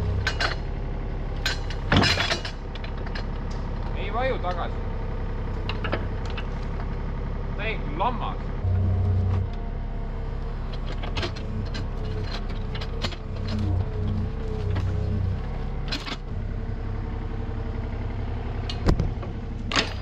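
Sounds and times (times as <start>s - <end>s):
excavator diesel engine running: 0.0s - 20.0s
hydraulics working: 0.0s - 20.0s.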